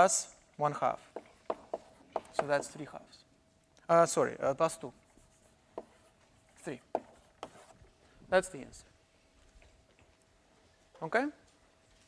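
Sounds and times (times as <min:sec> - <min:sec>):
faint steady hum: 0:00.0 - 0:12.0
writing on a board: 0:01.0 - 0:02.8, 0:05.1 - 0:07.9.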